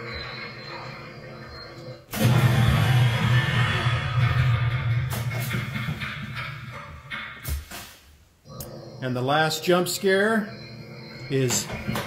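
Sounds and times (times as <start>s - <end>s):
low hum: 0.0s - 7.4s.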